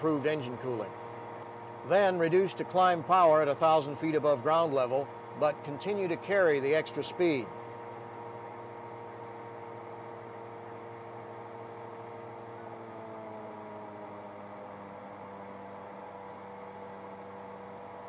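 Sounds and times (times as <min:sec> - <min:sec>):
aircraft engine drone: 0:00.0 - 0:18.0.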